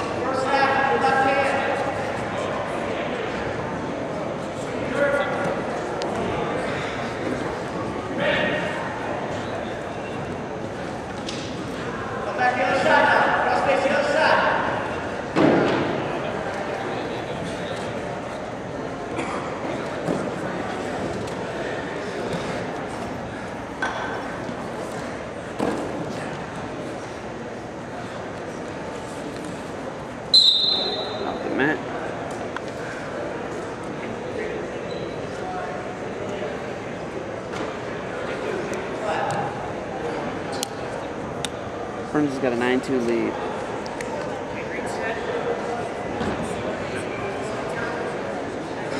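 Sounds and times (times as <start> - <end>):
murmur of voices: 0.0 - 48.9
referee whistle blast: 30.3 - 31.2.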